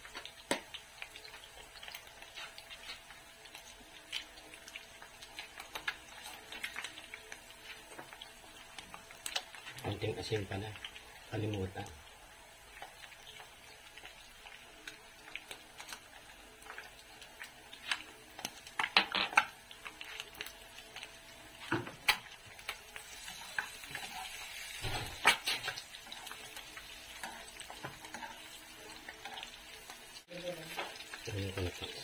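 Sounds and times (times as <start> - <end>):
eggs sizzling in oil: 0.0 - 32.0.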